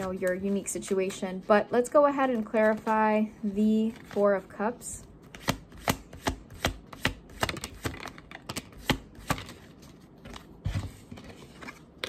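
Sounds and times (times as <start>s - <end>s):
cards being shuffled by hand: 0.0s - 1.4s, 5.2s - 12.0s.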